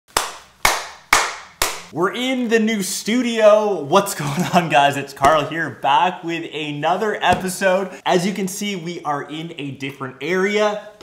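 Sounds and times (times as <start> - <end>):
hand claps with echo: 0.1 - 1.9.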